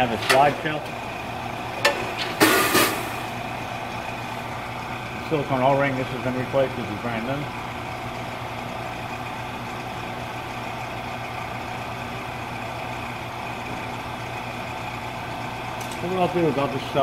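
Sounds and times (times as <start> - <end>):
machinery hum: 0.0 - 17.0.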